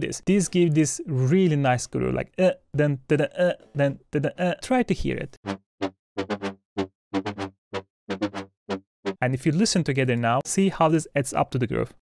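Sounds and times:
staccato synthesizer riff: 5.4s - 9.2s.

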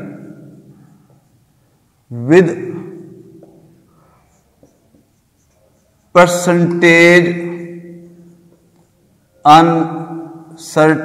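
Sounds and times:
marker pen on whiteboard: 0.1s - 10.7s.

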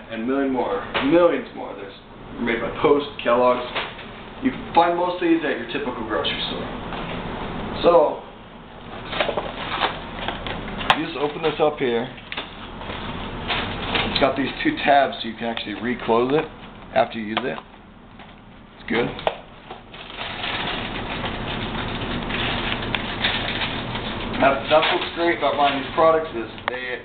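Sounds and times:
sharp plastic crackle: 9.0s - 14.7s, 15.5s - 27.0s
cereal box and bag crinkling: 19.9s - 26.3s.

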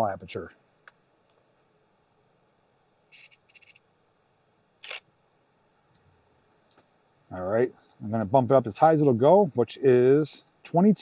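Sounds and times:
faint camera clicks: 3.1s - 3.8s, 4.8s - 5.1s
camera shutter release: 4.8s - 5.1s.

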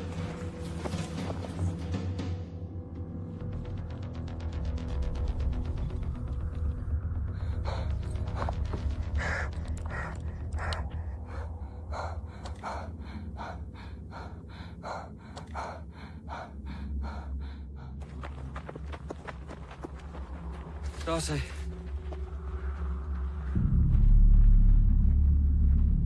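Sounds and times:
low musical drone: 0.0s - 19.2s, 19.8s - 26.0s.

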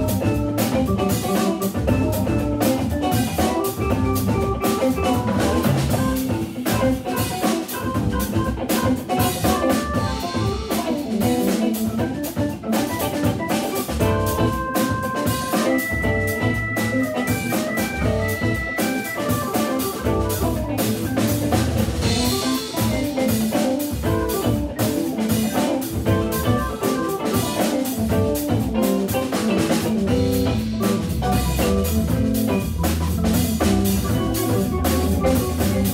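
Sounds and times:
drum kit groove: 0.0s - 35.9s
electric guitar: 0.0s - 35.9s
hammond organ: 0.0s - 35.9s.

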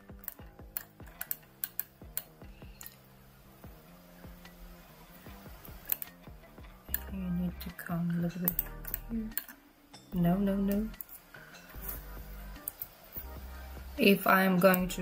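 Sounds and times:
soft background music: 0.0s - 15.0s
computer mouse clicking: 0.1s - 3.0s, 5.7s - 6.2s, 6.9s - 7.1s.

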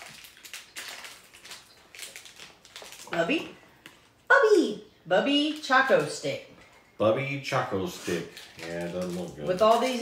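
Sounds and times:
plastic wrapper crinkling: 0.0s - 4.3s, 7.7s - 10.0s.

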